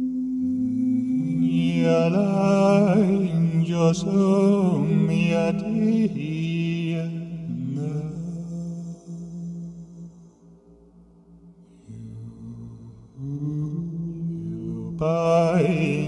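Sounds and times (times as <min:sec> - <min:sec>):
sustained vocal drones: 0:00.0 - 0:16.0
man chanting: 0:00.4 - 0:10.2, 0:11.8 - 0:16.0.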